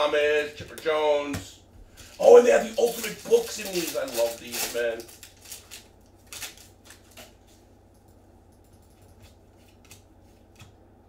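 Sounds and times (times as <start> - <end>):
plastic wrapper crinkling: 1.9 - 7.6.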